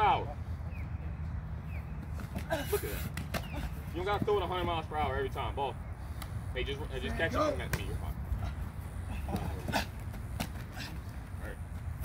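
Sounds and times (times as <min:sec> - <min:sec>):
distant voices: 0:00.0 - 0:12.0
sharp slaps: 0:02.2 - 0:03.6.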